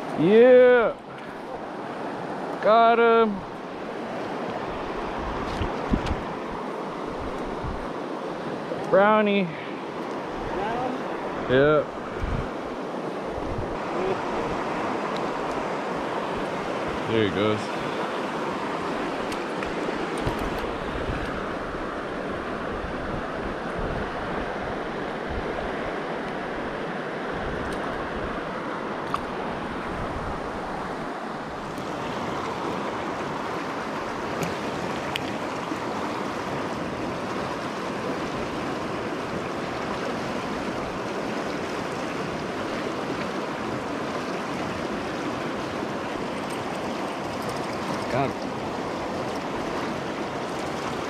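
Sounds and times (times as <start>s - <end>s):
river water rushing over rocks: 0.0s - 51.0s.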